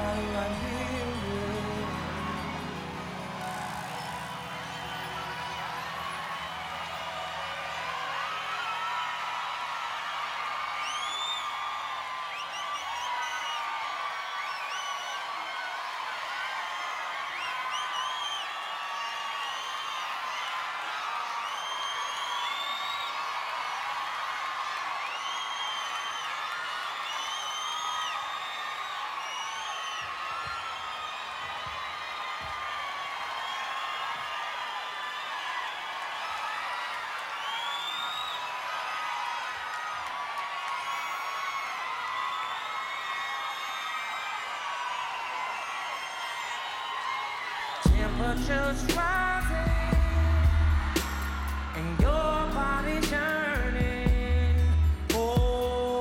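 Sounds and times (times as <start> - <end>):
audience cheering and screaming: 0.0 - 56.0.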